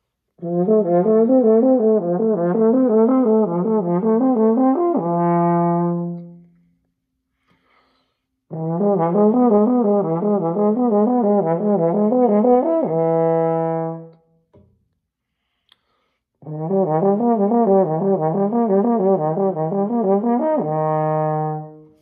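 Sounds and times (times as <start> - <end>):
french horn playing slurred notes: 0.4 - 6.5, 8.5 - 14.2, 16.4 - 22.0.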